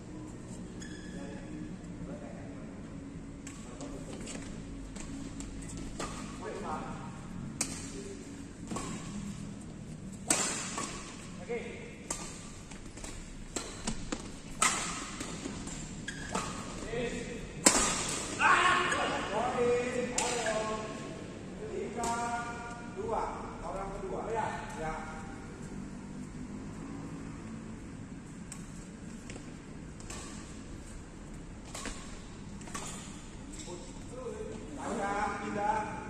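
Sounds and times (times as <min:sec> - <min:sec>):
rackets hitting shuttlecock: 0:04.9 - 0:06.8, 0:07.5 - 0:09.4, 0:10.1 - 0:19.2, 0:20.0 - 0:20.7, 0:21.9 - 0:22.5, 0:28.4 - 0:33.4.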